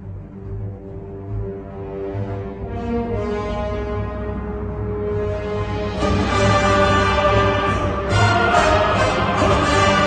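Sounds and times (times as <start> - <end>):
orchestral music with held low notes: 0.0 - 10.0.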